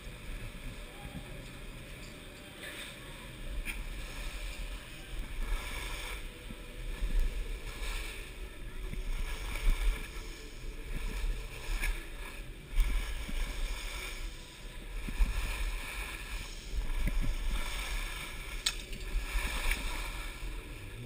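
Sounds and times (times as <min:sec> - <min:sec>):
wind buffeting microphone: 0:00.0 - 0:21.0
skis scraping over snow: 0:03.7 - 0:21.0.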